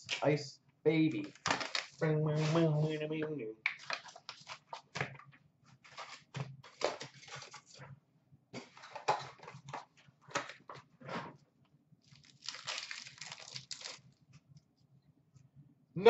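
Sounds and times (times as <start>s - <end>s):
card packs rustling and crinkling: 1.2s - 3.0s, 3.7s - 7.9s, 8.6s - 11.3s, 12.1s - 14.2s.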